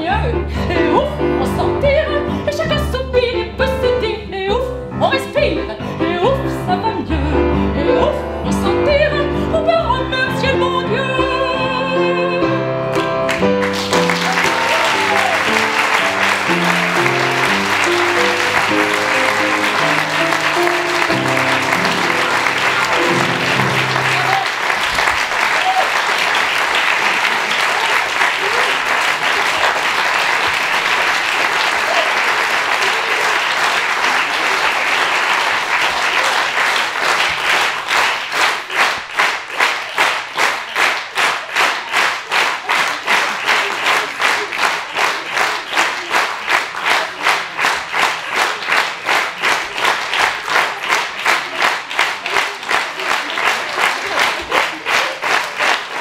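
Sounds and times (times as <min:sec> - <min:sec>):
upright piano notes: 0:00.1 - 0:24.7
audience applause: 0:12.9 - 0:56.0
rhythmic clapping in unison: 0:12.9 - 0:56.0.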